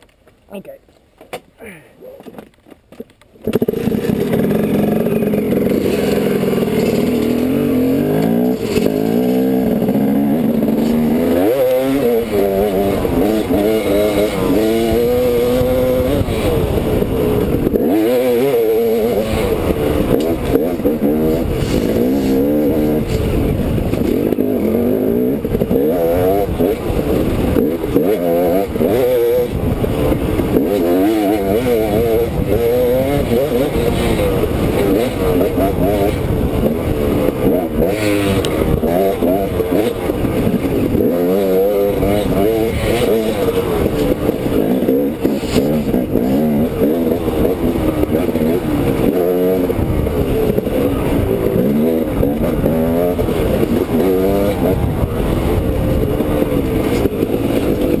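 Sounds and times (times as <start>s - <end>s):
dirt bike engine revving: 3.4s - 58.0s.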